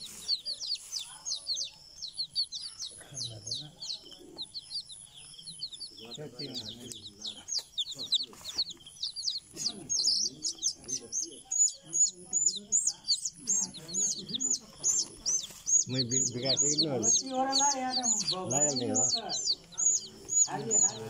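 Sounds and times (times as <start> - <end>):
faint voices: 0.0 - 21.0
small birds chirping: 0.0 - 21.0.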